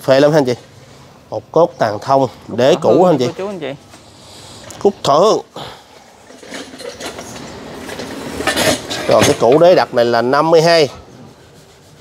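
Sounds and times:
steady background noise: 0.0s - 12.0s
scrape: 10.0s - 12.0s.

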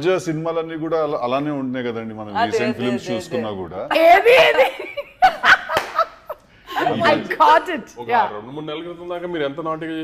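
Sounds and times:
people laughing: 4.4s - 7.4s.

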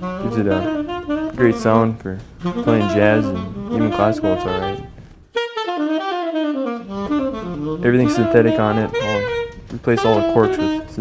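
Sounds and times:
tenor saxophone phrase: 0.0s - 11.0s.

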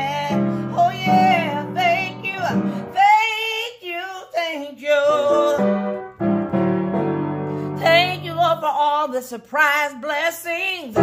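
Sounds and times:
piano chords: 0.0s - 3.8s, 4.9s - 9.0s
woman singing gospel: 0.0s - 6.0s, 7.8s - 11.0s.

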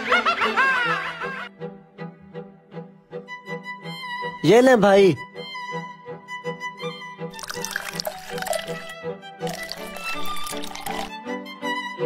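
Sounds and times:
soda fizzing as poured: 7.3s - 11.1s.

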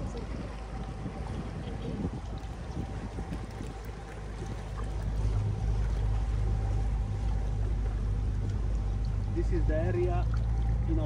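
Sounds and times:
boat motor droning: 0.0s - 11.0s.

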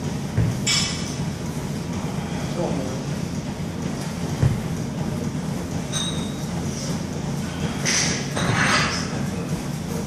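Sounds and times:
body thumping onto gym mat: 0.2s - 1.0s, 4.3s - 4.8s.

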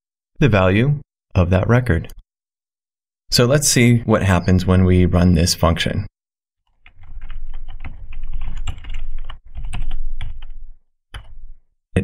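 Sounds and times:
computer keyboard typing: 6.7s - 11.5s.

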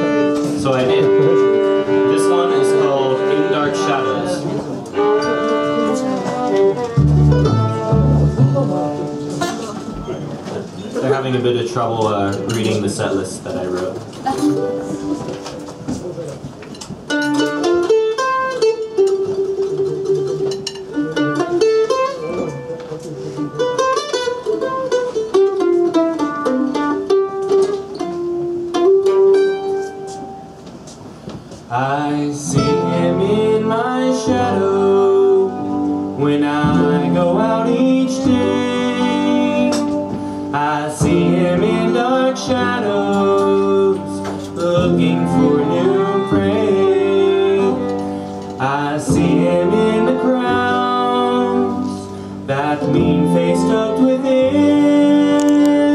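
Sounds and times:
fiddle: 0.0s - 10.6s, 31.8s - 55.9s
upright bass: 0.0s - 11.2s, 31.8s - 55.9s
picked strings: 0.0s - 55.9s.

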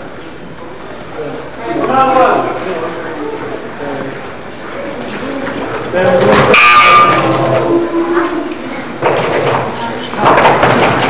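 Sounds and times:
indistinct voices echoing: 0.0s - 11.0s.

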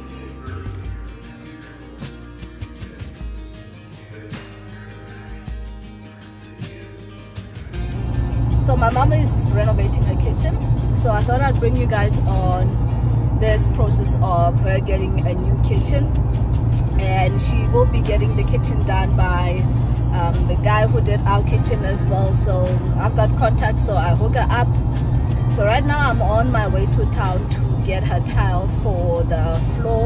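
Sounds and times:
song with singing: 0.0s - 1.8s
car road rumble: 7.4s - 30.0s.

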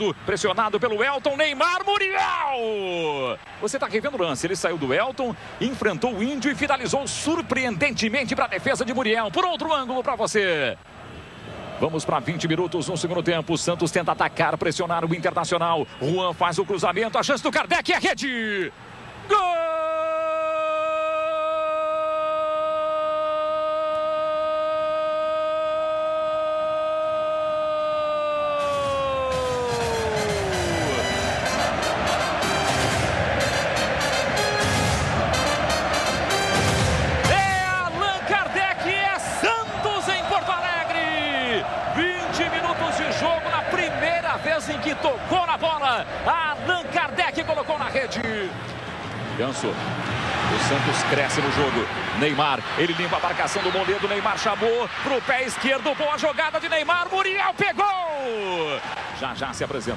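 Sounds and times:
commentator's long goal shout: 19.3s - 31.1s, 37.2s - 47.3s
fast excited voice: 25.1s - 31.0s
music: 28.6s - 37.8s.

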